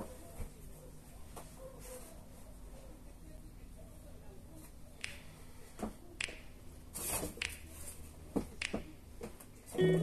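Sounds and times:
faint sharp clicks and taps: 4.6s - 6.6s, 7.2s - 9.6s.

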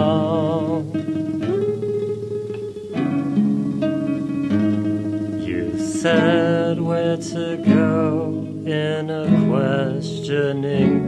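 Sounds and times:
guitar strumming chords: 0.0s - 11.0s.

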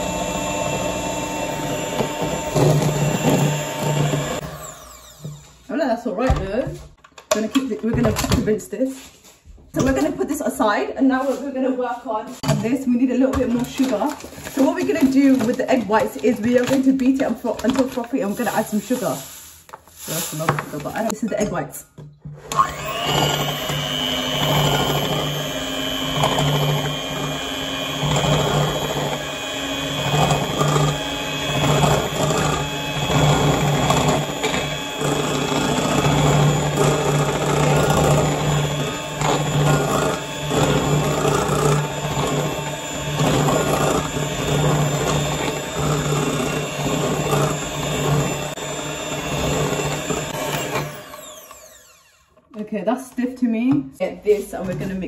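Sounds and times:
electric hand mixer running: 0.0s - 5.8s, 22.4s - 52.5s.

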